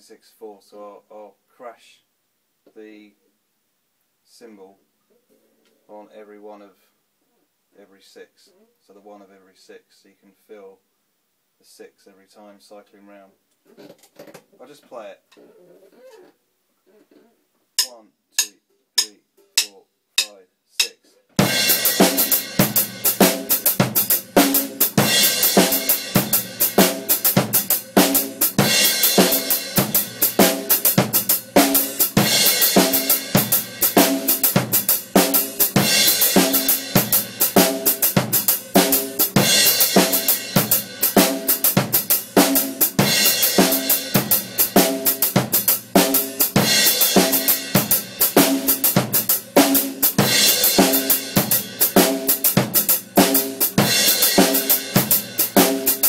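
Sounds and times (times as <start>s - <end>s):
pedal hi-hat: 17.8s - 56.0s
snare drum: 20.8s - 56.0s.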